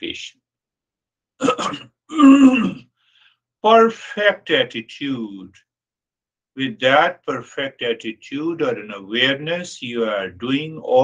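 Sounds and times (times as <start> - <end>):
man coughing: 1.4 - 2.8.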